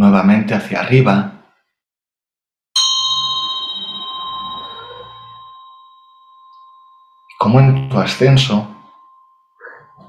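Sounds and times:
metal hand bell ringing: 2.8 - 10.0.

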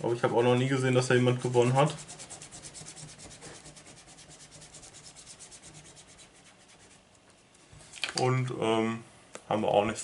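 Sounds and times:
paper rubbing: 0.3 - 7.2.

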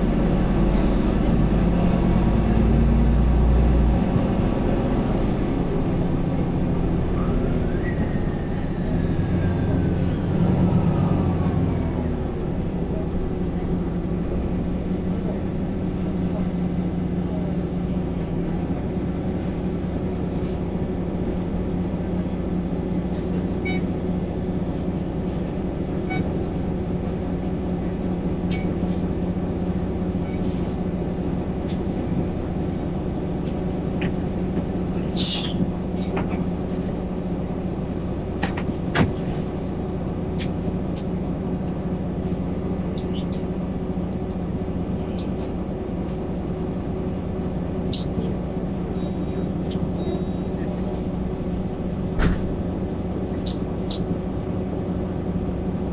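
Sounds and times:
bus diesel engine droning: 0.0 - 55.9.

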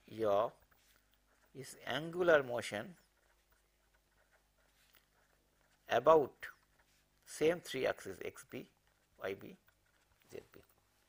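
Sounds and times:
faint writing sounds: 0.0 - 11.0.

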